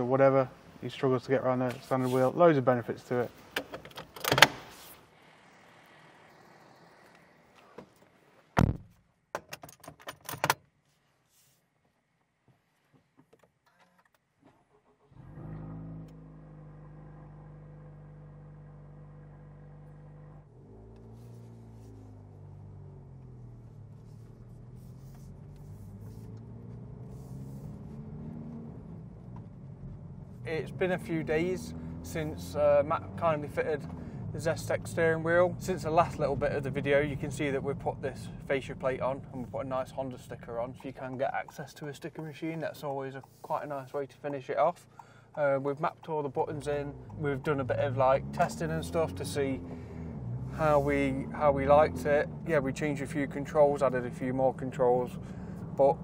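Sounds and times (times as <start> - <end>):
sharp clicks and knocks: 3.5 - 4.7, 7.6 - 10.7
car engine from inside cabin: 4.7 - 8.6, 15.0 - 56.0.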